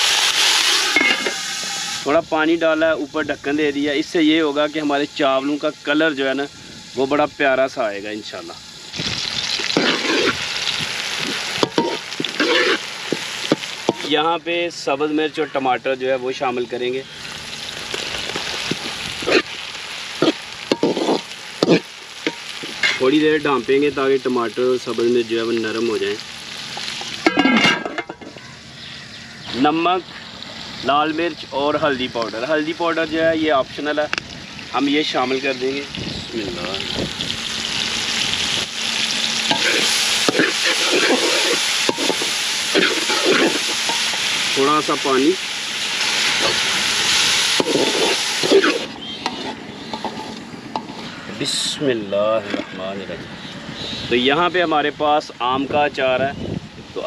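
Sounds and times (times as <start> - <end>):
vegetables sizzling in hot oil: 0.0 - 51.8
metal spoon scraping pan: 0.8 - 1.9, 9.7 - 10.4, 11.6 - 12.8, 20.2 - 21.8, 47.6 - 51.1.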